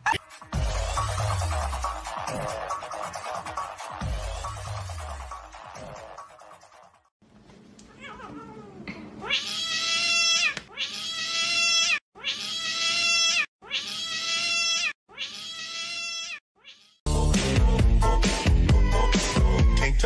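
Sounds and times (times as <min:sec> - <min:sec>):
music: 0:00.2 - 0:07.1, 0:17.1 - 0:20.0
cat meowing: 0:07.9 - 0:17.0.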